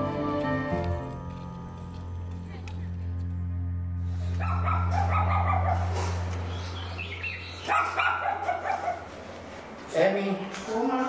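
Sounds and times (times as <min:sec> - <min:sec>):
low steady hum: 0:00.8 - 0:07.8
dogs barking: 0:04.3 - 0:09.3.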